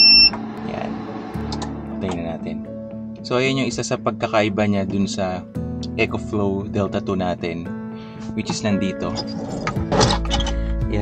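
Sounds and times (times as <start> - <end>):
short high beep: 0.0 - 0.3
background music: 0.0 - 11.0.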